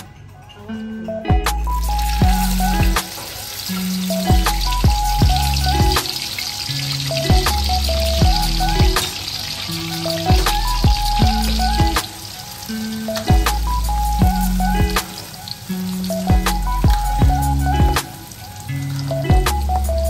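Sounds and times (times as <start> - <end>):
background music: 0.0 - 20.0
peanuts sizzling in oil: 1.7 - 20.0.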